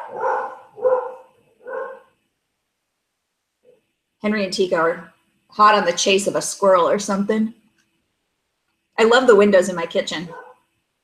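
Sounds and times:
dogs barking: 0.0s - 2.1s, 10.2s - 10.6s.

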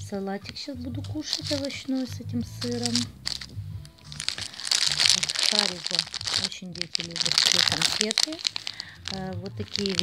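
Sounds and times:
plastic packaging crinkling: 1.1s - 10.0s.

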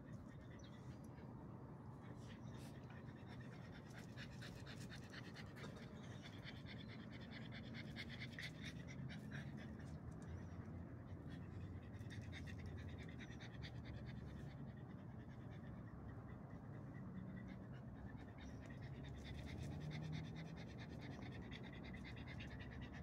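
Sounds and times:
dog panting quickly: 0.0s - 23.0s.

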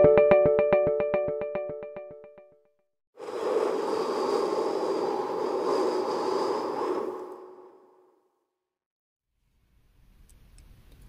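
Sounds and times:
rushing whoosh: 3.2s - 8.4s.

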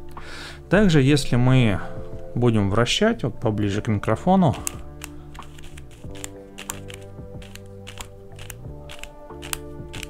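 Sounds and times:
background music: 0.0s - 10.0s
plastic puzzle cube clicking: 4.6s - 10.0s.

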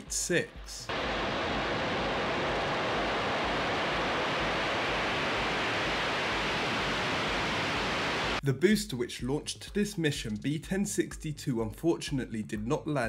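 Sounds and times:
rocket engines roaring: 0.9s - 8.4s.

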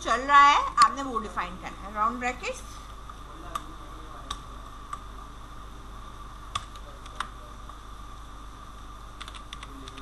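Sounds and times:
faint background hum: 0.0s - 10.0s
keyboard typing: 9.2s - 10.0s.

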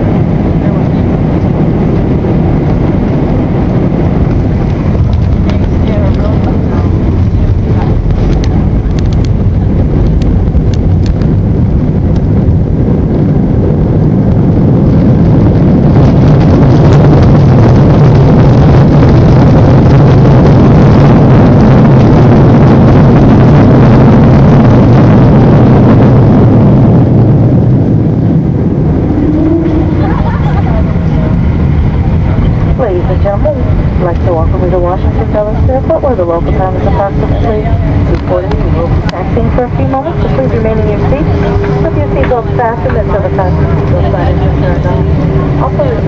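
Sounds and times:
jet engines reverse thrust rumble: 0.0s - 46.0s.

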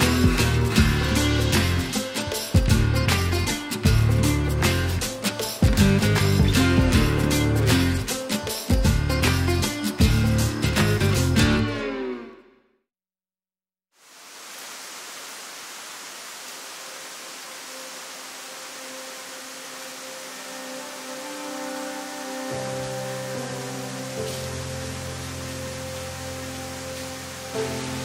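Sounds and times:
waterfall rushing: 14.0s - 28.0s
soft sustained music notes: 17.6s - 28.0s.

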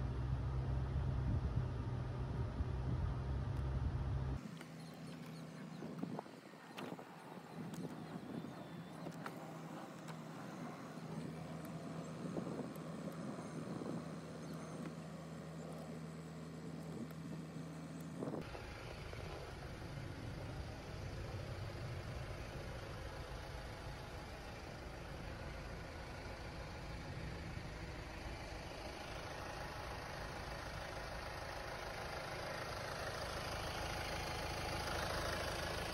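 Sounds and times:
low motor hum: 0.0s - 35.9s.

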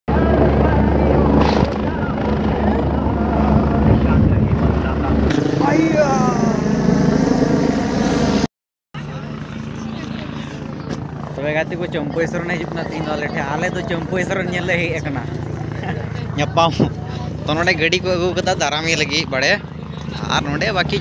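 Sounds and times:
helicopter rotor and turbine hum: 0.1s - 21.0s.

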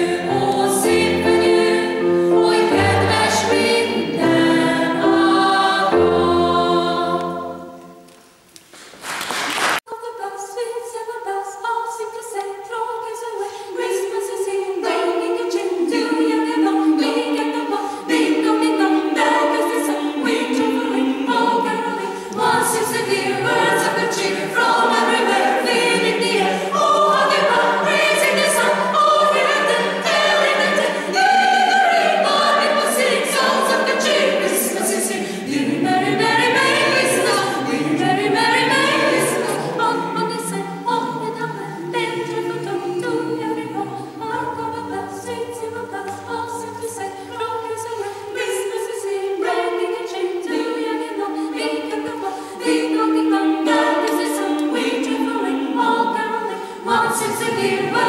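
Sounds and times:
mixed choir singing unaccompanied: 0.0s - 8.1s, 9.6s - 58.0s.

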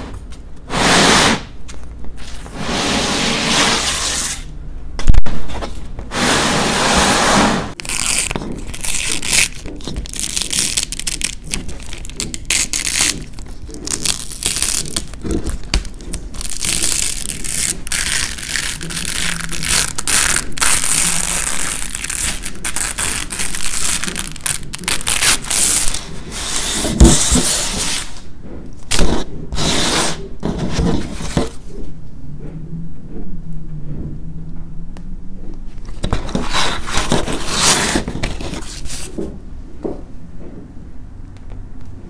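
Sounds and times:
dried paint crackling: 7.7s - 26.1s.

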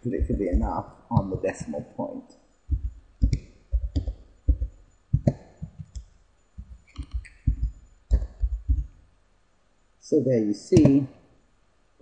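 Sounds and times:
computer keyboard typing: 0.0s - 1.8s, 2.7s - 9.0s.

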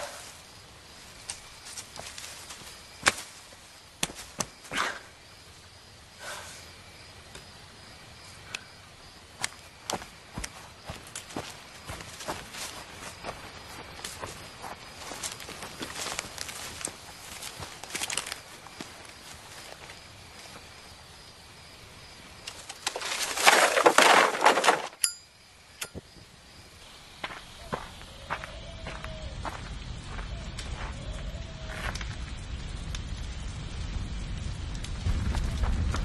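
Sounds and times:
footsteps through bamboo: 0.0s - 5.0s, 9.3s - 20.7s, 22.5s - 25.0s
faint held tone: 25.0s - 26.0s.

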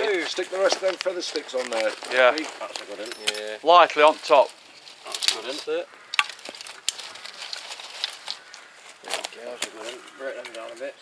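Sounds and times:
twigs crackling in a small fire: 0.0s - 11.0s.

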